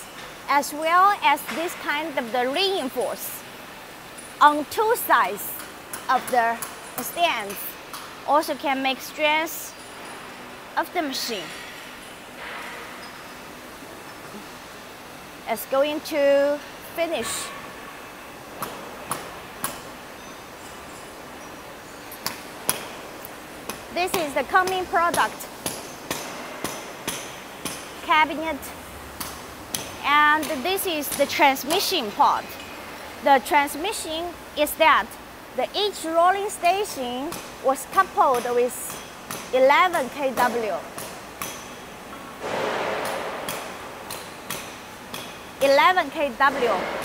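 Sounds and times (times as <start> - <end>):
steady background hiss: 0.0 - 47.0
sharp metallic knocks: 38.2 - 45.5.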